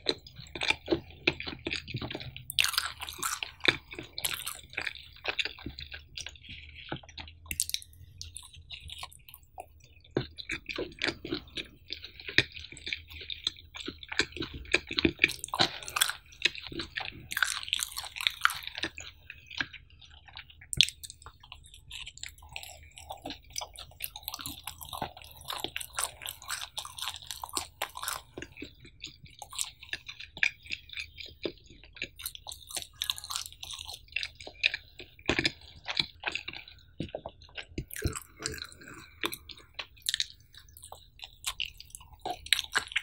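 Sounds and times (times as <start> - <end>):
chewing with mouth clicks: 0.0 - 43.0.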